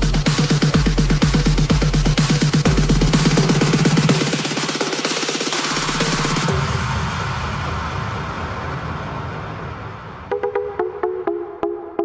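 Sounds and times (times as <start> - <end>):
low rumbling bass: 0.0 - 4.4
synthesised noise wash: 0.0 - 12.0.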